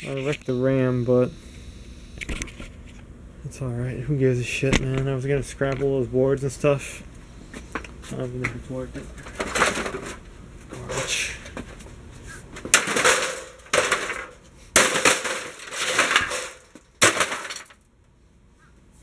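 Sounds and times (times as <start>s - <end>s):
parts clattering when handled: 7.6s - 11.9s, 12.6s - 17.8s
metal parts rattling: 9.2s - 10.2s, 12.7s - 17.8s
sledgehammer striking metal case: 12.7s - 17.7s.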